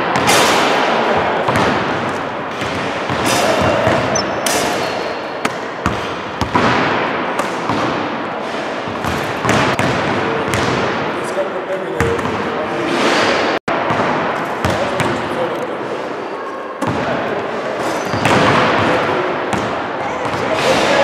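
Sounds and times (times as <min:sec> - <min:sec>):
players' voices: 0:00.0 - 0:05.9, 0:06.7 - 0:21.0
basketballs bouncing on wooden floor: 0:01.4 - 0:08.2, 0:08.8 - 0:11.1, 0:13.7 - 0:15.2, 0:16.8 - 0:17.2, 0:18.0 - 0:21.0.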